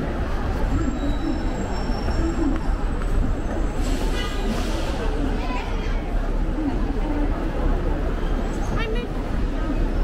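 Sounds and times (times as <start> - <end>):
bus: 0.0 - 10.0
city traffic rumble: 0.0 - 10.0
murmur of crowd voices: 0.0 - 10.0.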